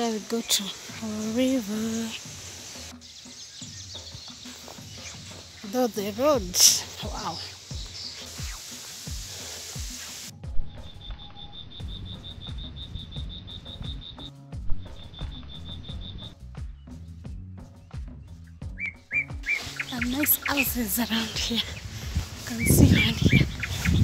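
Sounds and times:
footsteps on stony dirt road: 4.0 - 5.7, 19.4 - 24.0.

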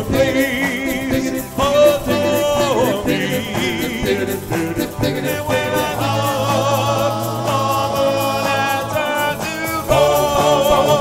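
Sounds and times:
male vocal group harmony singing: 0.0 - 11.0.

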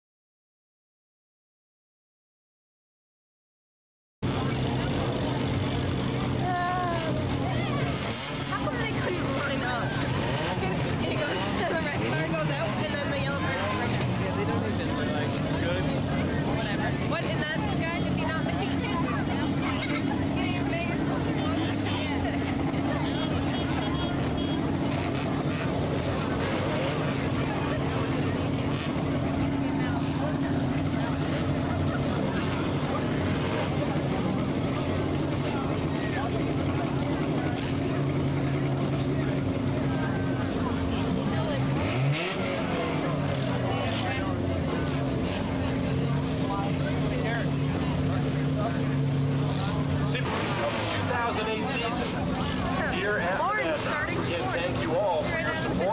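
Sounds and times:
race car engines droning: 4.2 - 55.9.

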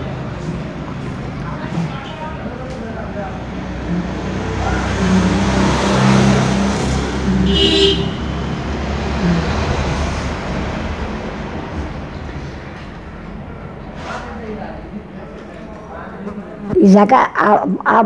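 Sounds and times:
vehicle engine rumble passing: 0.0 - 16.7
short high horn toot: 7.3 - 8.5.

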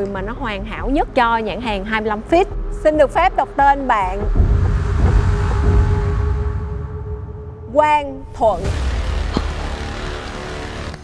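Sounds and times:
background music: 0.0 - 11.0
deep rumble: 0.0 - 11.0.

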